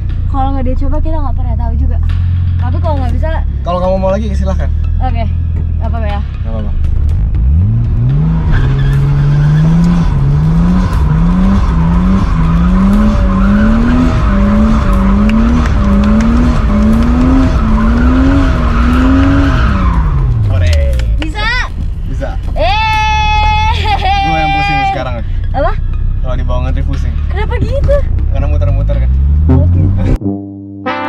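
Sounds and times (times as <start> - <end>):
car engine revving hard: 7.2 - 20.5, 28.9 - 30.5
tyre squeal: 8.4 - 10.1.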